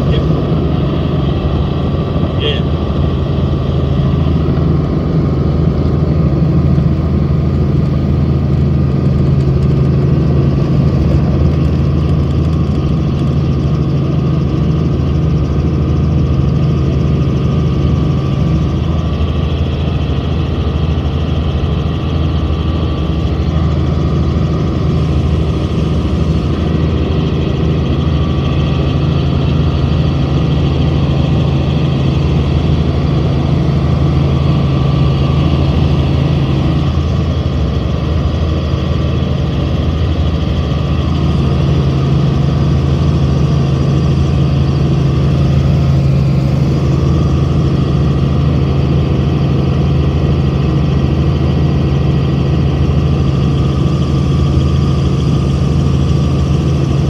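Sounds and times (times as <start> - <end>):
helicopter engine and rotors drone: 0.0 - 57.0.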